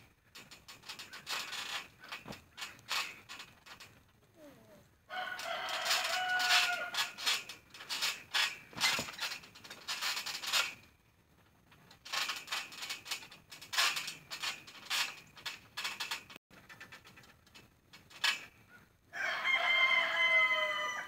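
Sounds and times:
trampoline springs creaking: 0:00.0 - 0:21.0
rooster crowing: 0:05.1 - 0:07.1, 0:19.1 - 0:21.0.

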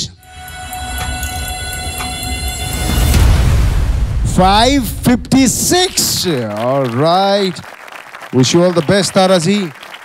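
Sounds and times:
held electronic chord: 0:00.0 - 0:06.3
low rumble: 0:01.4 - 0:06.4.

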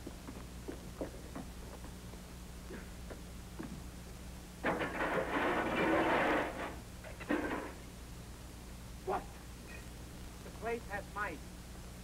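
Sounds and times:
metal trays clattering: 0:04.6 - 0:07.8.

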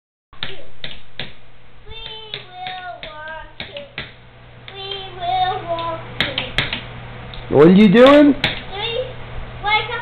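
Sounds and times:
child's voice: 0:00.4 - 0:00.8, 0:01.8 - 0:04.0, 0:04.7 - 0:06.8, 0:08.7 - 0:10.0
pencils tapping on wooden table: 0:02.0 - 0:05.1, 0:05.8 - 0:06.9, 0:08.4 - 0:08.6.

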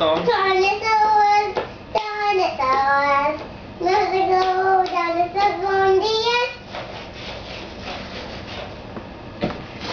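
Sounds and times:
young child singing: 0:00.2 - 0:06.7.

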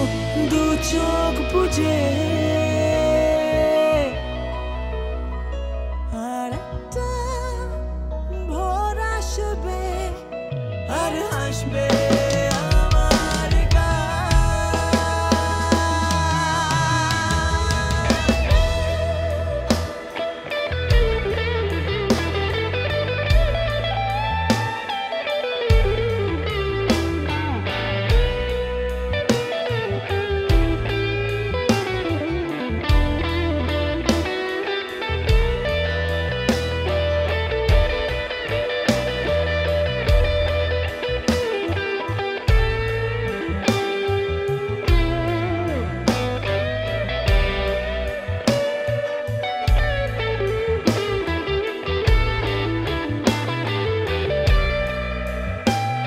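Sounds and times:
bass guitar: 0:00.0 - 0:56.0
lead electric guitar melody: 0:00.0 - 0:56.0
steady drum beat: 0:11.9 - 0:20.2, 0:20.9 - 0:22.5, 0:23.3 - 0:23.8, 0:25.7 - 0:26.2, 0:32.9 - 0:33.4, 0:35.3 - 0:35.8, 0:37.7 - 0:39.3, 0:40.0 - 0:40.7, 0:42.5 - 0:43.0, 0:47.2 - 0:47.9, 0:49.7 - 0:50.2, 0:52.1 - 0:52.6, 0:54.5 - 0:55.1.

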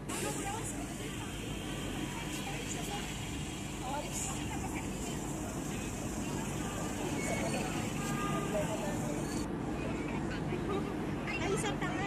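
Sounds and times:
steady traffic noise: 0:00.0 - 0:12.0
people talking: 0:00.1 - 0:09.4, 0:10.0 - 0:12.0.

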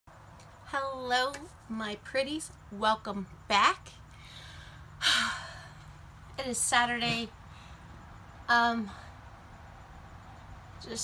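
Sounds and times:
woman sighing: 0:04.4 - 0:05.8.

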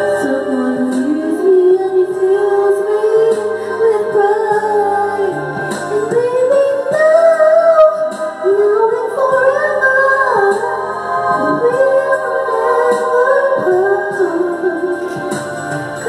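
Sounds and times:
woman singing slow melody: 0:00.0 - 0:16.0.

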